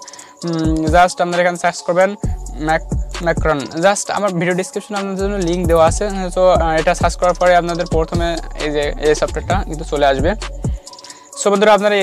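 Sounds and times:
person talking: 0.0s - 10.6s
background music: 0.0s - 12.0s.

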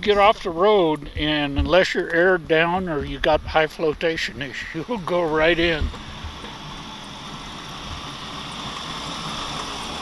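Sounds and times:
tyres on sand and gravel: 0.0s - 10.0s
vehicle engine approaching: 2.9s - 10.0s.

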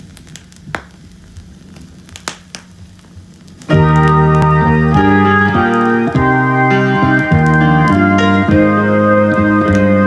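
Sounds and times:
vinyl crackles and pops: 0.0s - 10.0s
vinyl low hum: 0.0s - 10.0s.

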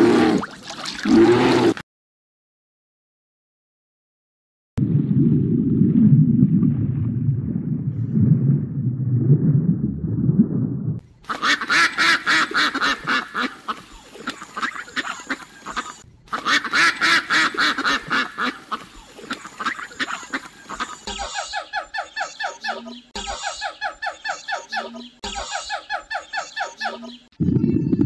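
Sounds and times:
low rumble: 4.8s - 11.0s
ducks quacking: 11.2s - 27.3s.

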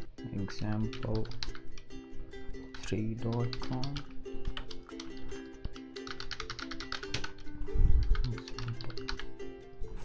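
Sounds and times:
background music: 0.0s - 10.0s
computer keyboard typing: 0.9s - 1.6s, 3.3s - 5.2s, 6.0s - 7.4s, 8.0s - 9.2s.

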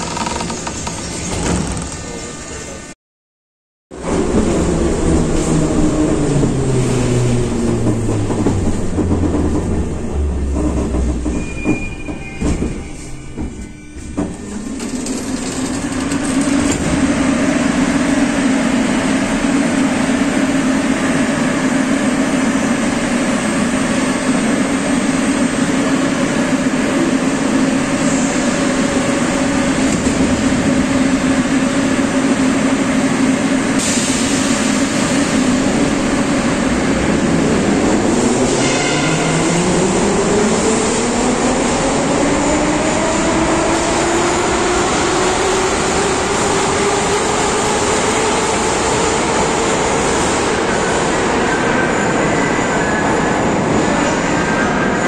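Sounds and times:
train hum and rumble: 0.0s - 3.0s, 3.9s - 55.0s.

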